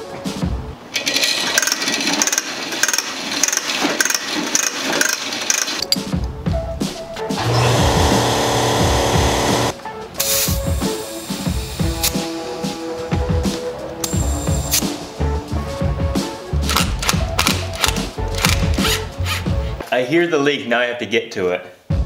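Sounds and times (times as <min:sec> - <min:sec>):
hose reel rattling and clicking: 0:01.0 - 0:06.0
loud steady hum: 0:07.4 - 0:09.8.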